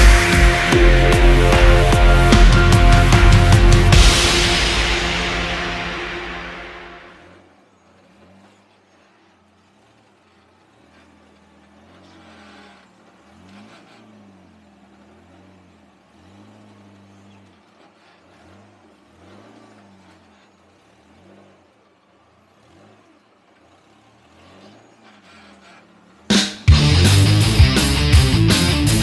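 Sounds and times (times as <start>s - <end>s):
faint buggy engine revving: 0.0s - 29.0s.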